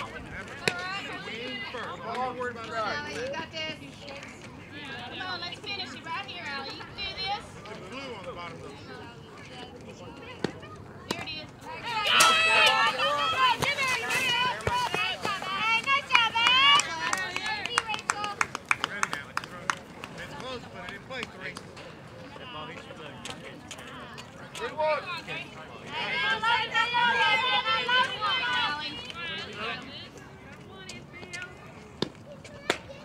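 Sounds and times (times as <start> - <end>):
girls cheering and yelling: 11.7 - 17.1
hand clapping: 16.1 - 21.7.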